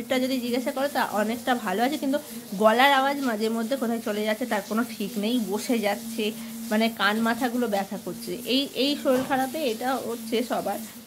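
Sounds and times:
woman talking: 0:00.0 - 0:11.0.

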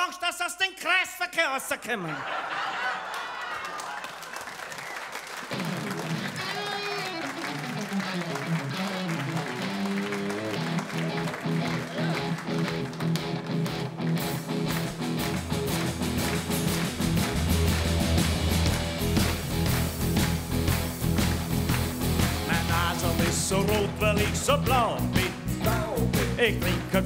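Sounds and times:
audience laughter: 0:01.9 - 0:12.5
audience applause: 0:02.3 - 0:24.4
live band with guitars: 0:05.4 - 0:27.0
bass guitar: 0:05.6 - 0:27.0.

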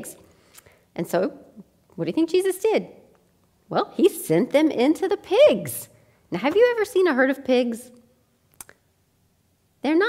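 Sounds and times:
woman talking: 0:01.0 - 0:03.0, 0:03.7 - 0:08.0.

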